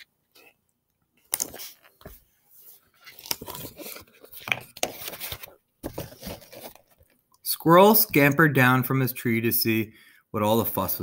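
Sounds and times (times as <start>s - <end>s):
book pages rustling: 1.2s - 7.2s.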